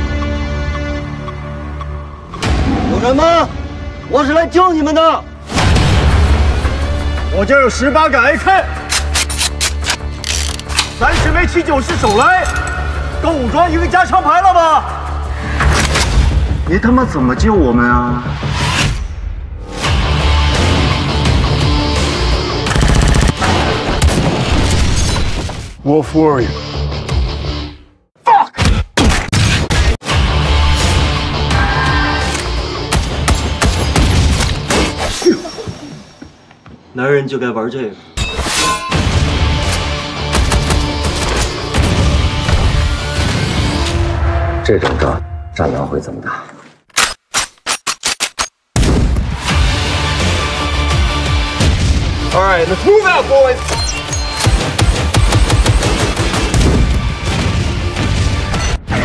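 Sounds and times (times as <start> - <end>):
dramatic trailer music: 0.0 - 36.4, 37.9 - 46.3, 48.8 - 59.0
gunshots: 39.7 - 42.2, 53.8 - 57.9.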